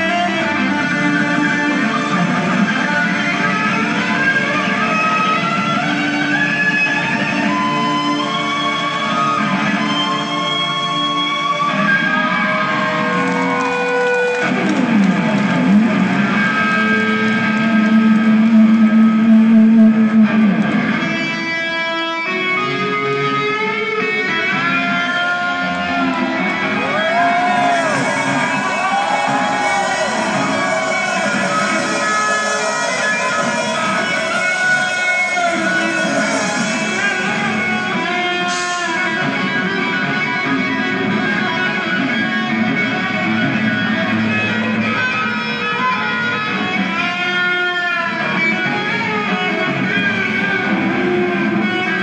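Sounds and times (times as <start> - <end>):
electric guitar sustained notes: 0.0 - 52.0
live band music: 0.0 - 52.0.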